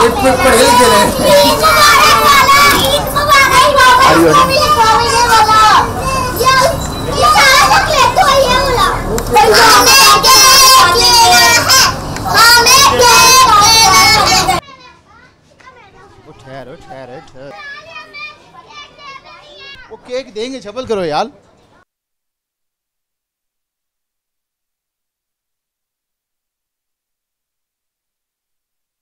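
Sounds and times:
young children chattering: 0.0 - 20.1.

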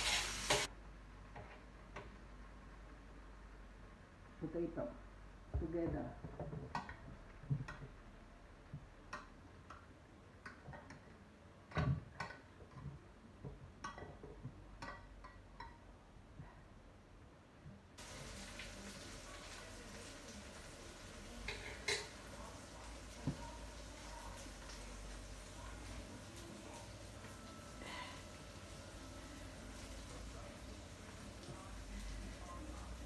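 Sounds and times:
steady hiss: 0.0 - 0.7
kitchen utensils clinking: 21.4 - 22.4.

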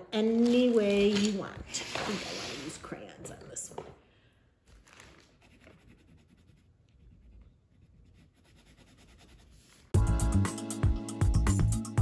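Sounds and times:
crayon scratching on paper: 5.3 - 9.9.

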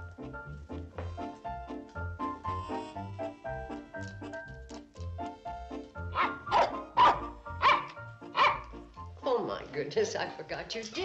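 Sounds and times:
light background music: 0.0 - 11.0
dog barking: 6.1 - 8.7.

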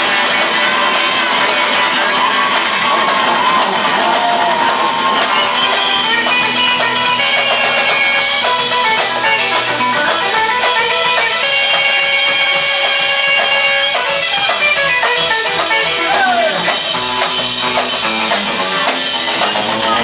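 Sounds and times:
rockabilly band playing live: 0.0 - 20.0.

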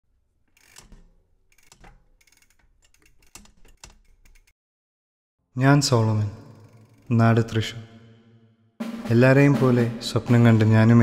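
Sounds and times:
bicycle freewheel ratcheting ticks: 0.5 - 4.5, 6.5 - 7.1.

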